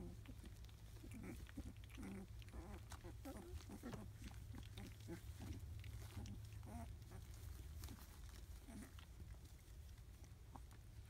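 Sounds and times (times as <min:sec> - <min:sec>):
puppies giving short low calls: 0:00.0 - 0:11.0
steady low hum: 0:00.0 - 0:11.0.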